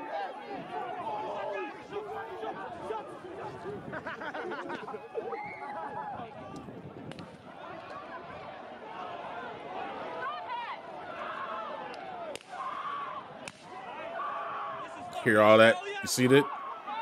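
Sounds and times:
crowd shouting: 0:00.0 - 0:17.0.

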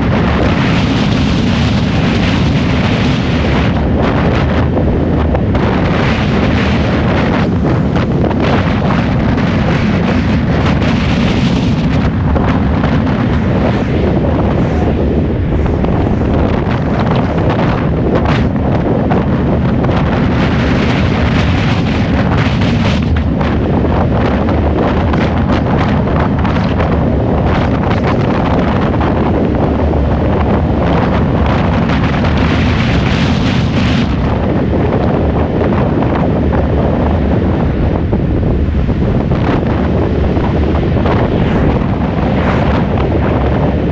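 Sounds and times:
car road noise: 0:00.0 - 0:43.9
wind buffeting microphone: 0:00.0 - 0:43.9.

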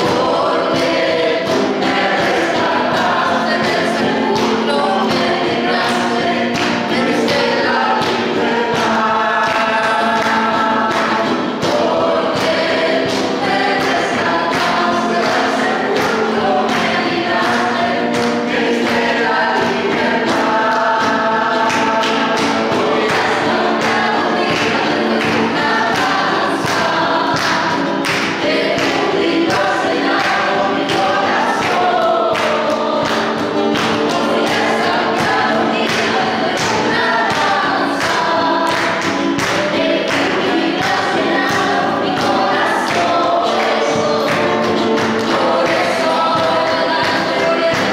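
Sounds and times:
group singing worship song: 0:00.0 - 0:47.9
instrumental accompaniment with beat: 0:00.0 - 0:47.9.

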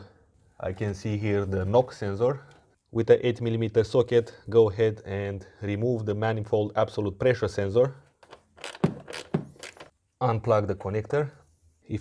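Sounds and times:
ratchet clicking and scraping: 0:08.2 - 0:09.9.

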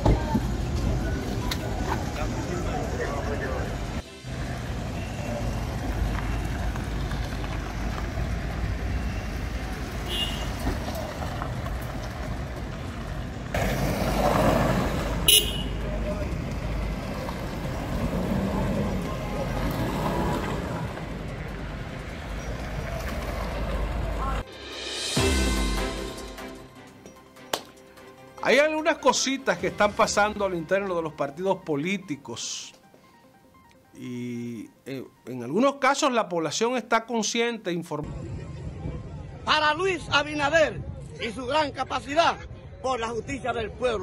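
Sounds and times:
vehicles running: 0:00.0 - 0:33.9
vehicle horn toot: 0:10.0 - 0:10.6, 0:15.2 - 0:15.9
crowd voices: 0:38.1 - 0:41.2.

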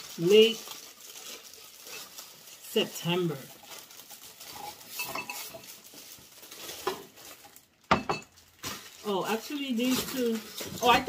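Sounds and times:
plastic packaging rustling: 0:00.0 - 0:11.0.

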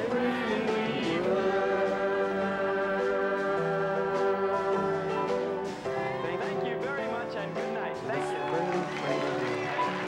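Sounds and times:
song with voices singing: 0:00.0 - 0:10.0.

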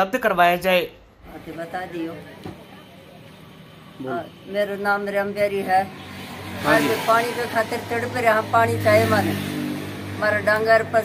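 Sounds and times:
woman's voice: 0:06.6 - 0:09.4, 0:10.1 - 0:11.0.

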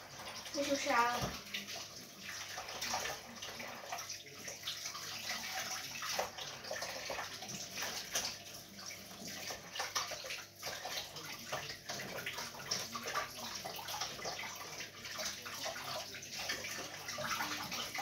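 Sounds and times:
tap water running into sink: 0:00.0 - 0:18.0.

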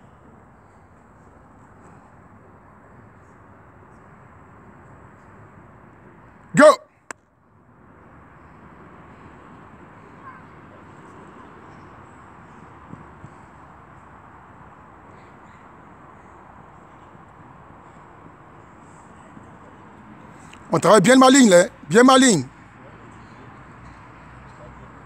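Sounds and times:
faint outdoor background noise: 0:00.0 - 0:25.0.

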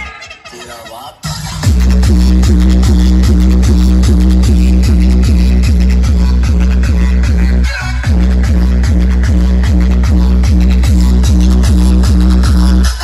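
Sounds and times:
electronic dance music: 0:00.0 - 0:13.0
heavy bass beat: 0:01.2 - 0:13.0.

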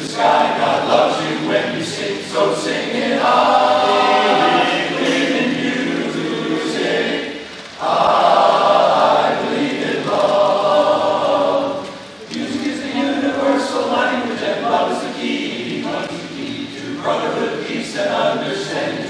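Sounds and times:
men's chorus singing a cappella: 0:00.0 - 0:19.0.

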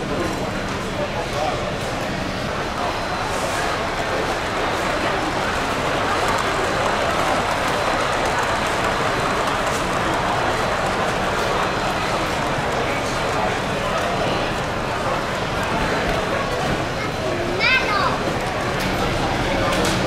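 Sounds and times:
indistinct chatter of many people: 0:00.0 - 0:20.0.

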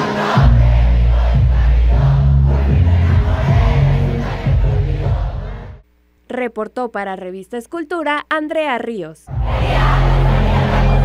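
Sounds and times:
live concert music: 0:00.0 - 0:05.8, 0:09.3 - 0:11.0
deep bass notes: 0:00.4 - 0:05.8, 0:09.3 - 0:11.0
crowd voices: 0:09.3 - 0:11.0.

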